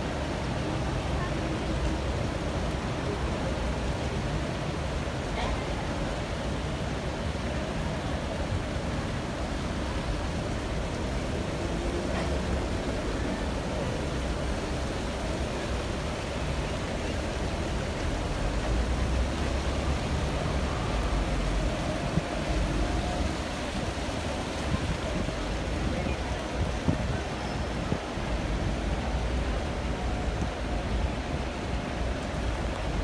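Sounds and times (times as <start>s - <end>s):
distant traffic rumble: 7.5s - 33.0s.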